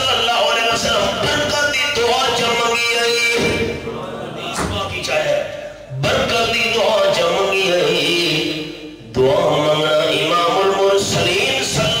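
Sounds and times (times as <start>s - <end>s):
man's sing-song recitation: 0.0s - 12.0s.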